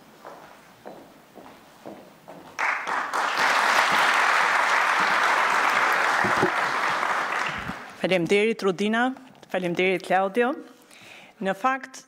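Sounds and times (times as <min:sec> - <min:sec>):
audience applauding: 0:02.6 - 0:08.0.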